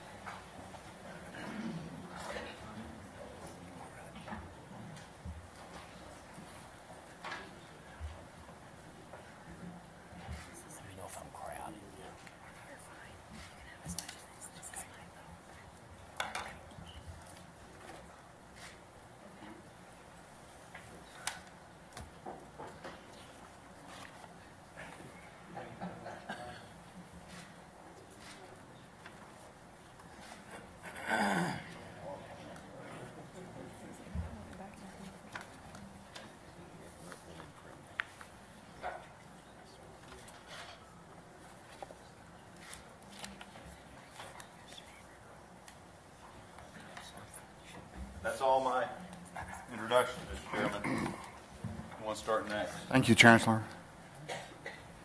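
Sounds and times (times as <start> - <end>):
people moving about: 0.0 - 55.0
people murmuring quietly: 0.0 - 55.0.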